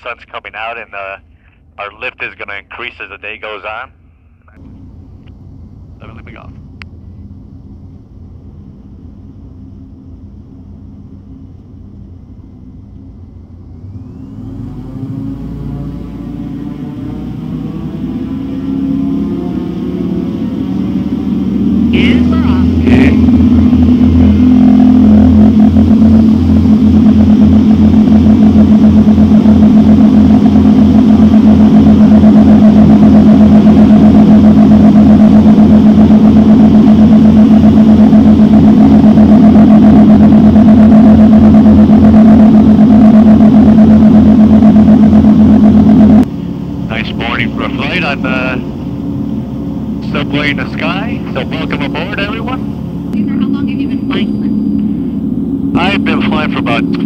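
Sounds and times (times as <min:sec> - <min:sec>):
propeller engines droning: 0:00.0 - 0:57.0.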